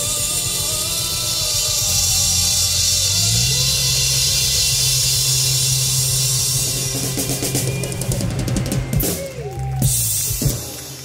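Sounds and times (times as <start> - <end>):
sustained low bass note: 0.0 - 8.6
ringing cymbals: 0.0 - 9.2
drum kit roll and heavy hits: 0.0 - 11.0.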